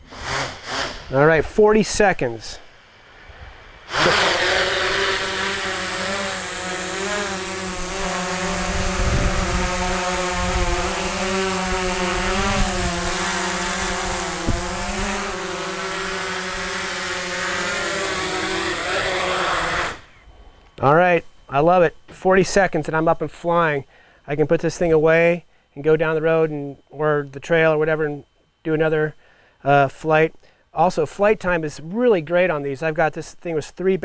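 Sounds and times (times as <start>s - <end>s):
drone propellers whining: 3.2s - 20.4s.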